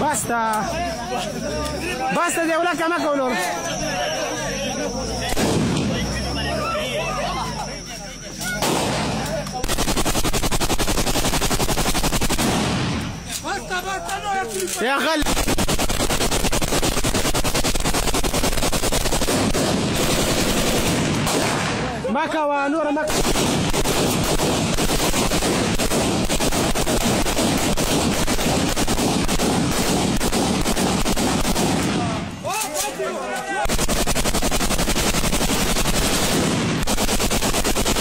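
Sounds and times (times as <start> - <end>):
rapid automatic gunfire: 8.6 - 13.0, 14.9 - 21.9, 23.0 - 32.3, 33.6 - 38.0.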